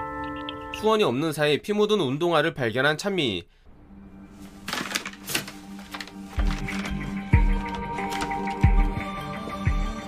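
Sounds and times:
clothes rustling: 4.2s - 8.8s
paper bag crinkling: 4.4s - 8.7s.

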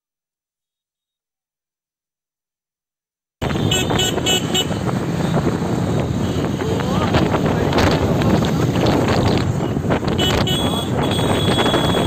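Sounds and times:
vehicle horn tooting: 3.4s - 4.8s, 10.1s - 12.0s
street traffic noise: 3.4s - 12.0s.

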